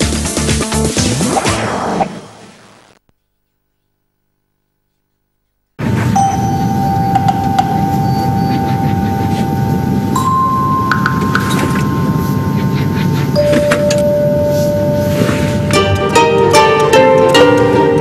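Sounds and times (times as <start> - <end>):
held chime-like tones: 6.1 - 15.8.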